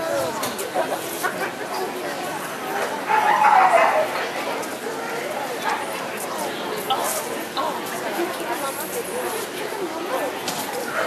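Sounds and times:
chatter of voices in hall: 0.0 - 11.0.

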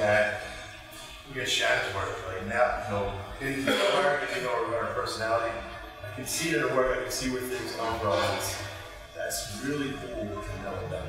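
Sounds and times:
man lecturing: 0.0 - 11.0.

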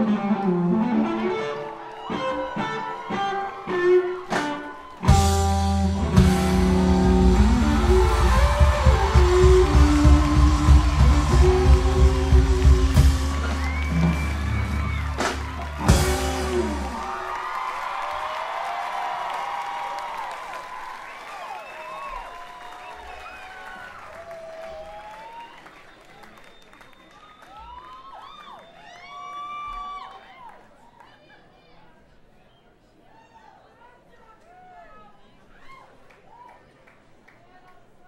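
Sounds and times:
live rock band playing: 0.0 - 17.2
crowd cheering and applause: 0.0 - 31.1.

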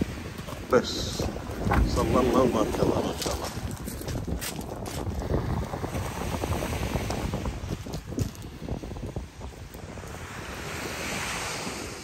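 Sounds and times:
surf washing on beach: 0.0 - 12.0
wind buffeting microphone: 0.0 - 12.0.

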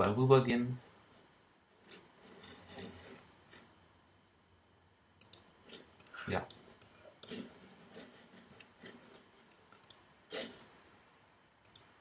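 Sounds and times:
computer mouse clicks: 5.2 - 7.4, 8.5 - 10.0, 11.6 - 11.9.

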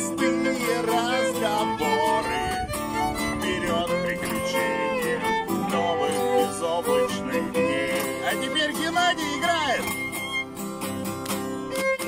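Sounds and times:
acoustic guitar playing: 0.0 - 12.0
fiddle melody: 0.0 - 12.0.

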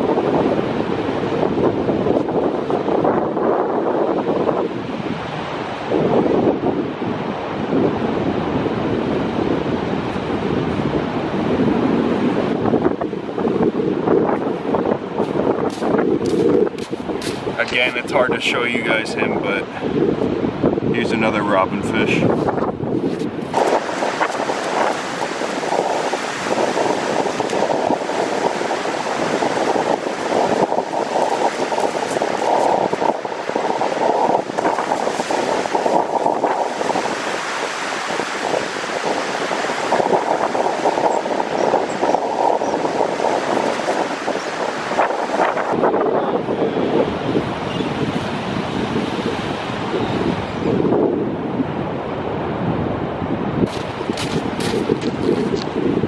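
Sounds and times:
ocean surf breaking: 0.0 - 46.0, 46.8 - 50.4, 51.4 - 56.0
wind buffeting microphone: 0.0 - 56.0.

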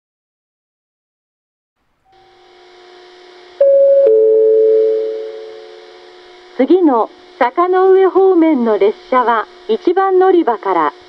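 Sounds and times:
faint steady tones: 2.2 - 6.7
two-note descending chime: 3.6 - 5.5.

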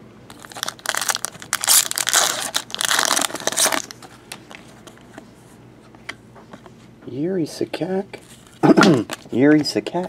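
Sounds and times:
foil wrappers crinkling: 0.3 - 4.6.

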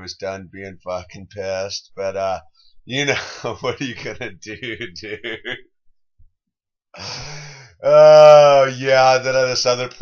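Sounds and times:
man laughing: 3.0 - 5.7
man sighing: 7.0 - 8.0.

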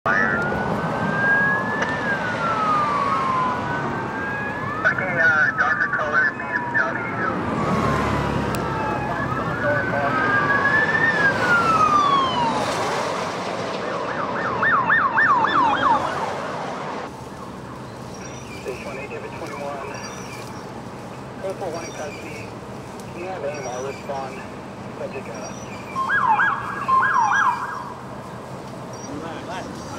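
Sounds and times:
police sirens wailing: 0.0 - 29.9
car speeding past: 7.2 - 17.1.

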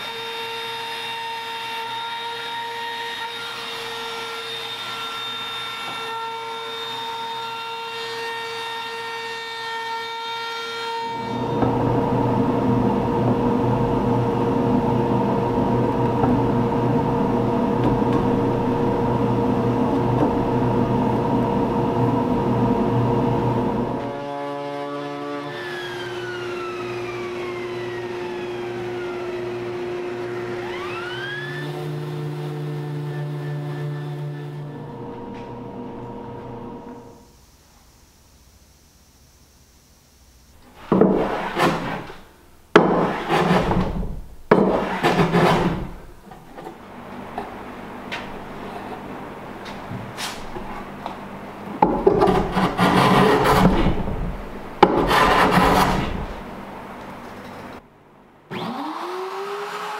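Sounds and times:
router high whine: 25.4 - 37.4, 58.5 - 59.9.

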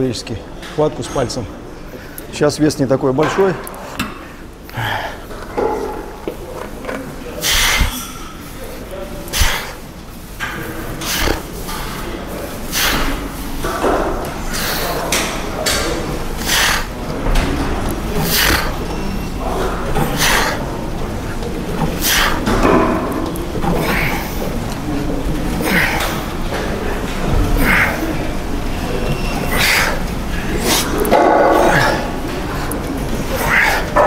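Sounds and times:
man breathing forcefully: 4.7 - 5.4, 7.4 - 8.1, 9.3 - 9.8, 11.0 - 11.5, 12.6 - 13.2, 14.5 - 15.1, 16.4 - 17.0, 18.1 - 18.9, 20.0 - 20.8, 21.8 - 22.6, 23.6 - 24.6, 25.5 - 26.4, 27.3 - 28.4, 29.3 - 34.0.

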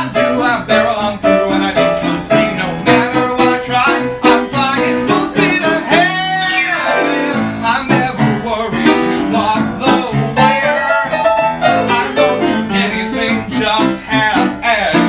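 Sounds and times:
man singing: 0.0 - 15.0
piano chords: 0.0 - 15.0.

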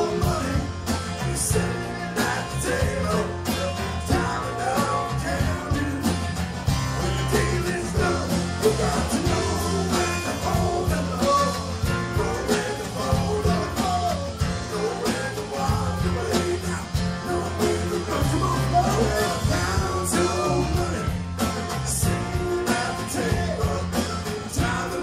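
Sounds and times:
acoustic guitar: 0.0 - 25.0
bass guitar: 0.0 - 25.0
drums: 0.0 - 25.0
electric guitar lead line: 0.0 - 25.0.

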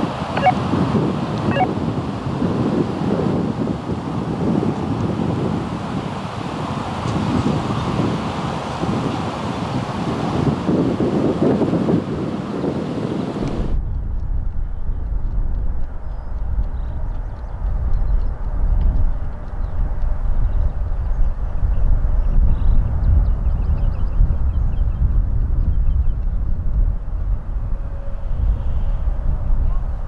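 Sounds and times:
wind buffeting microphone: 0.0 - 30.0
low rumble: 13.5 - 23.6.

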